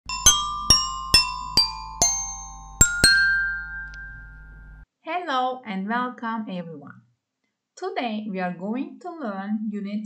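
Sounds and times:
bell-like mallet notes: 0.1 - 4.8.

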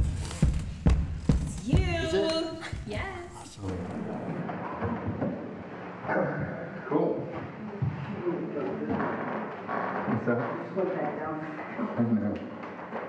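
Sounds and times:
indistinct talking: 1.4 - 4.4.

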